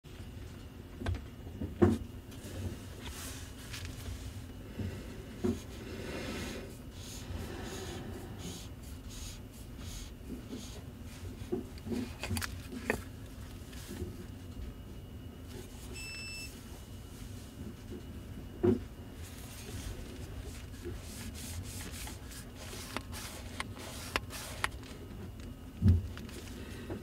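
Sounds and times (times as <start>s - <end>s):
gloves rubbing on camera lens: 19.4s - 24.9s.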